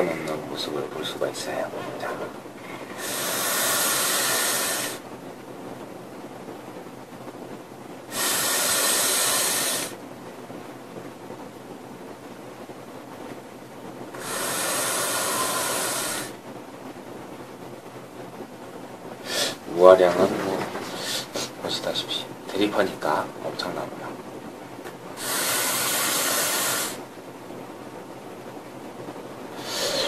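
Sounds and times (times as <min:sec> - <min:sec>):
faint steady hiss: 0:00.0 - 0:30.0
breathy rushes of vapour: 0:02.6 - 0:05.1, 0:08.1 - 0:10.0, 0:14.1 - 0:16.4, 0:19.2 - 0:19.6, 0:20.8 - 0:21.6, 0:25.2 - 0:27.1, 0:29.6 - 0:30.0.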